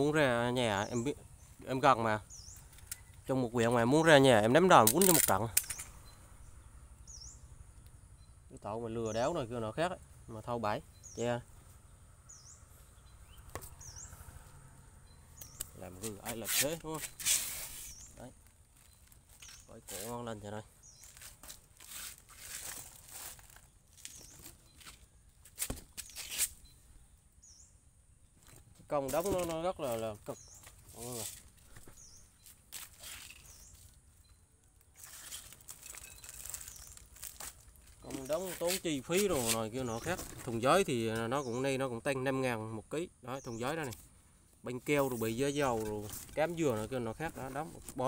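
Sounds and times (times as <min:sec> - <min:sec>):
bird chirping: 0:00.0 - 0:48.0
paper and cardboard rustling: 0:21.0 - 0:26.6, 0:28.4 - 0:33.9, 0:35.0 - 0:40.7.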